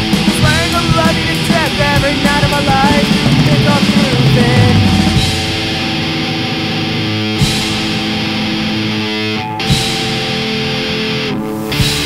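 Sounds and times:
electric guitar chords: 0:00.0 - 0:12.0
short sharp hit: 0:02.5 - 0:08.1.

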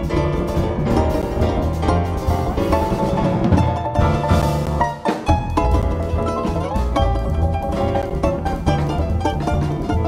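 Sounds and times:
balalaika: 0:00.0 - 0:10.0
drums: 0:00.0 - 0:10.0
piano: 0:00.0 - 0:10.0
plucked double bass: 0:00.0 - 0:10.0.

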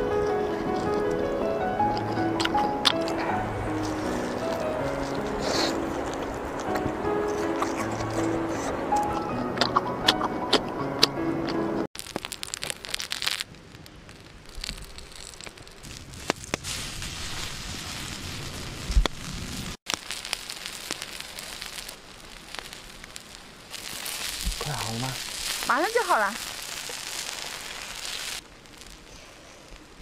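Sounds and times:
background music: 0:00.0 - 0:11.9
food cooking over open fire: 0:00.0 - 0:30.0
crisp crunching clicks: 0:12.0 - 0:16.6.

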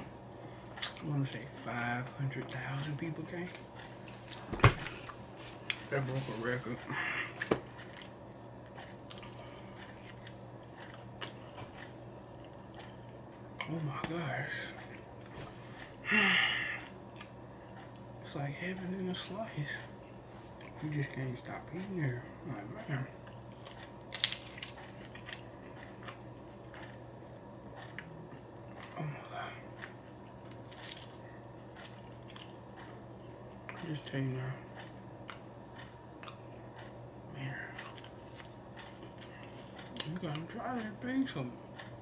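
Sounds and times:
man chewing pizza: 0:00.0 - 0:42.0
steady low hum: 0:00.0 - 0:42.0.

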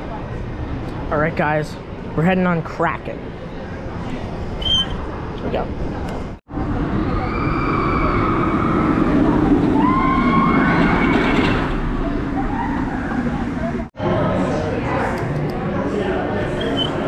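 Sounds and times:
roller coaster train roaring: 0:00.0 - 0:14.9.

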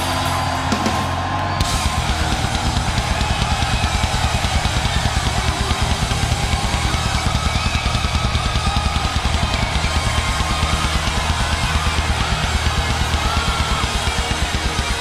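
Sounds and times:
distorted electric guitar: 0:00.0 - 0:15.0
fast bass drum beat: 0:00.0 - 0:15.0
heavy metal band playing: 0:00.0 - 0:15.0.

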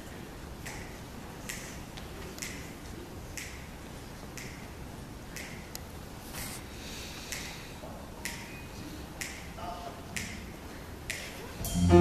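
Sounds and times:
finger snaps: 0:00.6 - 0:01.8, 0:02.4 - 0:02.7, 0:03.3 - 0:03.7, 0:04.3 - 0:04.6, 0:05.3 - 0:05.9, 0:07.2 - 0:07.6, 0:08.2 - 0:08.6, 0:09.2 - 0:09.5, 0:10.2 - 0:10.4, 0:11.1 - 0:11.4.

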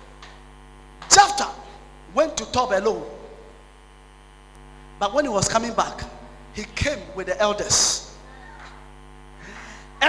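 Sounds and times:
electrical mains hum: 0:00.0 - 0:10.0
man's voice in hall: 0:01.0 - 0:03.6, 0:05.0 - 0:08.2.

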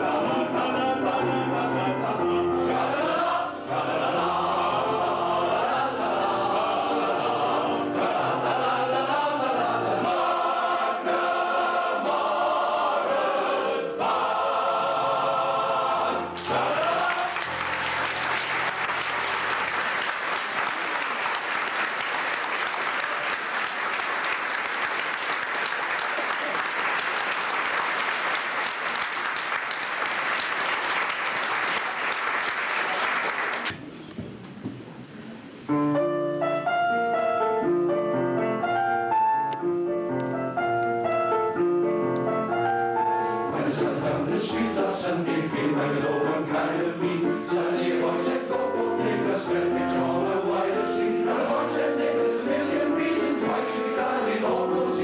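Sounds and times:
male voice choir singing: 0:00.0 - 0:18.0, 0:43.5 - 0:55.0
audience applause: 0:16.4 - 0:33.8.

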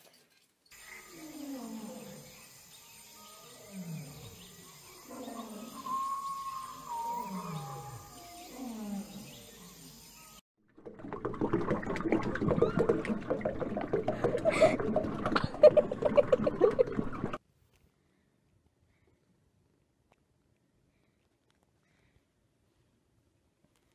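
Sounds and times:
deep roar-like calls: 0:03.5 - 0:09.6.

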